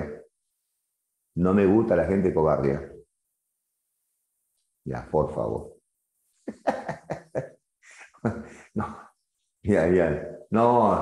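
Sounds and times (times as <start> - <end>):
man laughing: 6.4 - 9.1.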